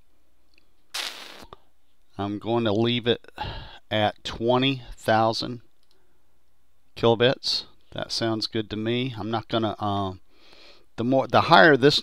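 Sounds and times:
short burst of hiss: 0.9 - 1.6.

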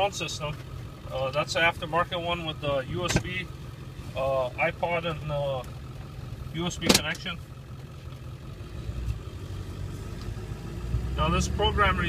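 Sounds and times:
diesel engine idling: 0.0 - 12.0.

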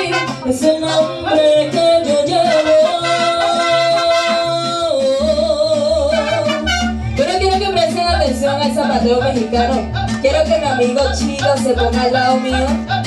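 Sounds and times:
mariachi band playing: 0.0 - 13.0
woman singing: 0.0 - 13.0.

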